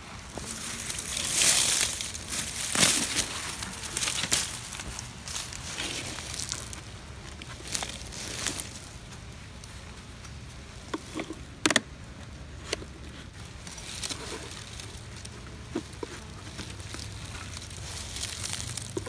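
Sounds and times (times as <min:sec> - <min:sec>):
dry stems crackling and rustling: 0:00.0 - 0:19.0.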